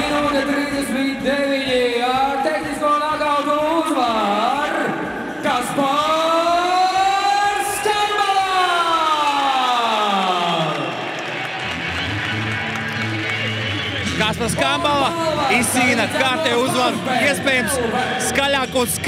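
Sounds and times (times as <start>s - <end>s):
music: 0.0s - 19.0s
crowd cheering: 5.5s - 19.0s.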